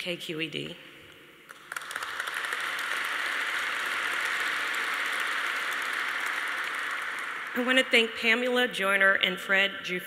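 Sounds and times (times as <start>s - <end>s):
audience applause: 1.5s - 7.7s.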